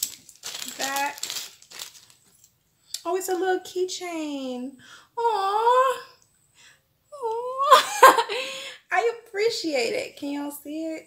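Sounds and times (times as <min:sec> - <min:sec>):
plastic bag crinkling: 0:00.0 - 0:02.5.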